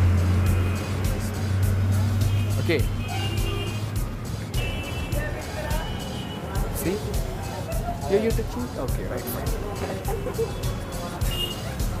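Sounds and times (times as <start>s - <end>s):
background music: 0.0s - 12.0s
vehicle engine humming: 0.0s - 12.0s.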